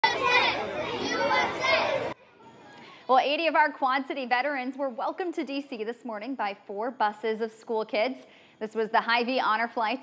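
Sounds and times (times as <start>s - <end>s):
crowd of children talking: 0.0s - 2.9s.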